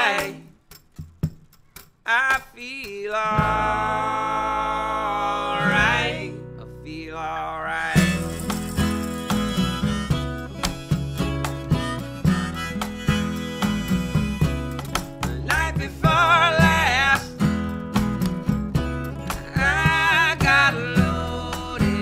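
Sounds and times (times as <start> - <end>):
strummed acoustic guitar: 0.0 - 22.0
plucked upright bass: 3.3 - 22.0
harmonica: 8.0 - 16.3.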